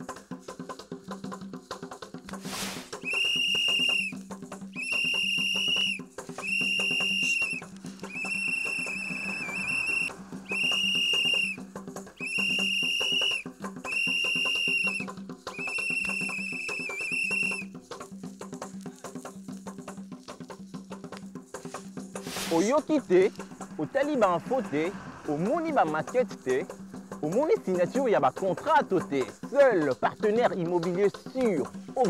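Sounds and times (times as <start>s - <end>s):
percussion beat: 0.0s - 32.0s
whistle blasts: 2.9s - 17.7s.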